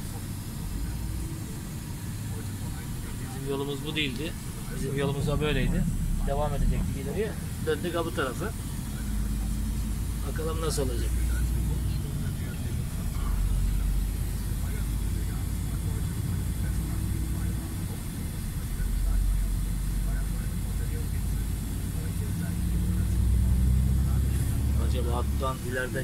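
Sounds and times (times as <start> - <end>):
truck diesel engine rumble: 0.0 - 26.0.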